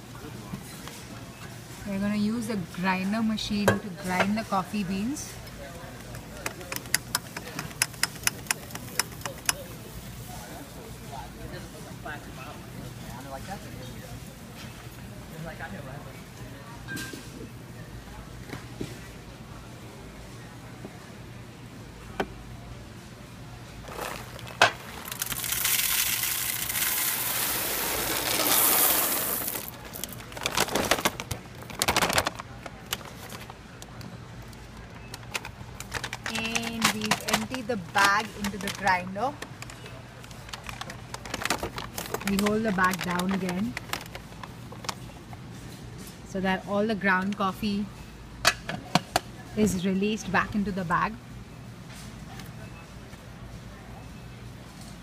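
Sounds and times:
coffee beans pouring into hopper: 23.8 - 31.1
paper bag crinkling: 23.8 - 33.6, 34.8 - 45.1.

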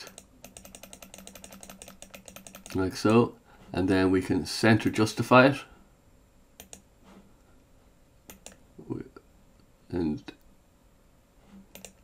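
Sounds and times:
mouse button clicking rapidly: 0.1 - 2.8, 6.6 - 6.8, 8.3 - 8.6, 11.7 - 12.0.

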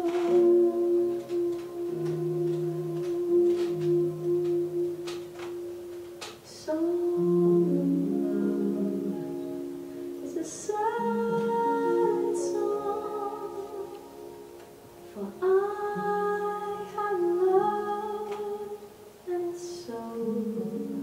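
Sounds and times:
soft guitar chords: 0.0 - 21.0
woman singing jazz: 0.0 - 21.0.

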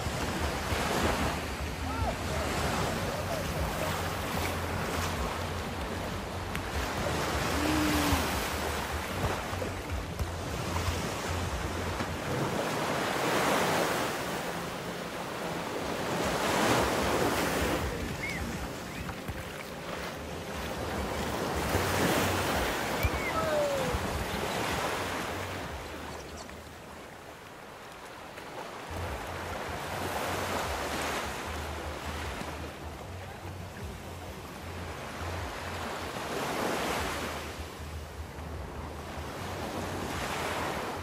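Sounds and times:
waves washing onto beach: 0.0 - 41.0
wind on microphone: 20.3 - 26.7.

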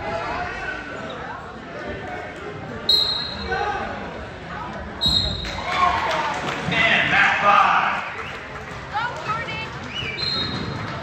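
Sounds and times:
voices in a large gym: 0.0 - 11.0
referee's whistle blasts: 2.9 - 3.6, 5.0 - 5.5.

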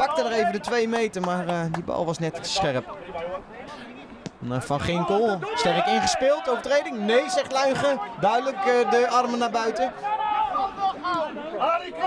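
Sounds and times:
men's voices calling: 0.0 - 12.0.

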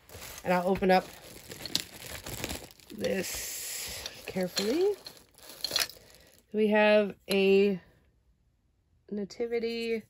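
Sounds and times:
plastic bag crinkling: 0.0 - 6.6.

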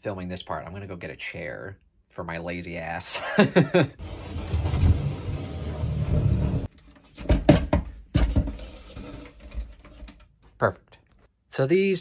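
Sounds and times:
chair scraping across wooden floor: 4.0 - 6.7, 8.3 - 10.2.

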